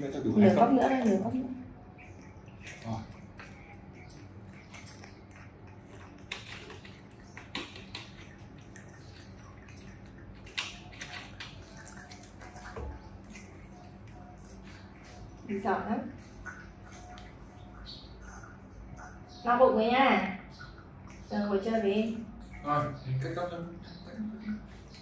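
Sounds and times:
monkeys sipping: 0:00.0 - 0:25.0.

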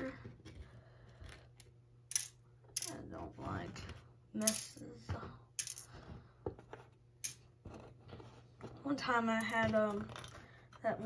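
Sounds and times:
small pieces clattering on wooden table: 0:05.6 - 0:06.0, 0:09.4 - 0:10.5.

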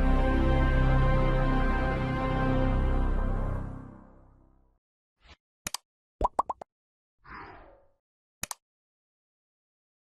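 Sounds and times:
double mouse click: 0:08.4 - 0:08.6.

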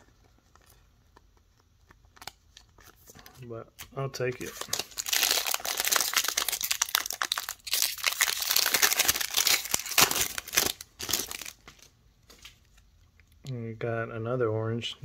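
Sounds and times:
wrapper crackling: 0:04.3 - 0:11.9.

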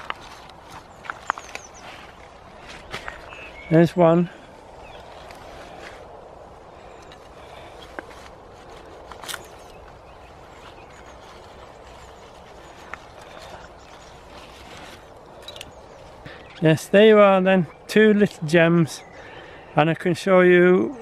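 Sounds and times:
faint outdoor background noise: 0:00.0 - 0:21.0.

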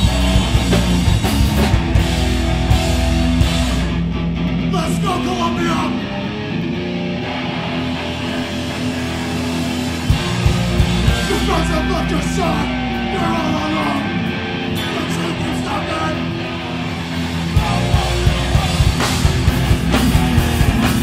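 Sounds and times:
distorted electric guitars: 0:00.0 - 0:21.0
drum kit: 0:00.0 - 0:21.0.

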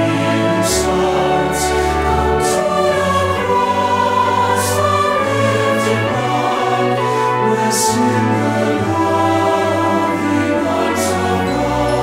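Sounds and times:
choir singing held chords: 0:00.0 - 0:12.0
instrumental accompaniment: 0:00.0 - 0:12.0.

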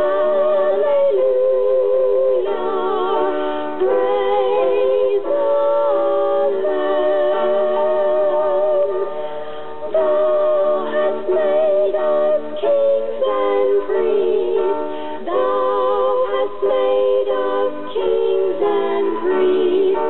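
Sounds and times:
women singing a hymn in harmony: 0:00.0 - 0:20.0.

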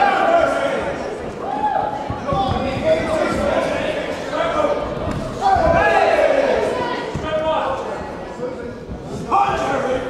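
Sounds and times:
spectators shouting: 0:04.6 - 0:07.3.

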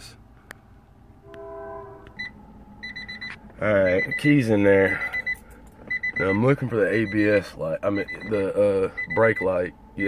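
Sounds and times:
train horn chord: 0:01.2 - 0:02.2.

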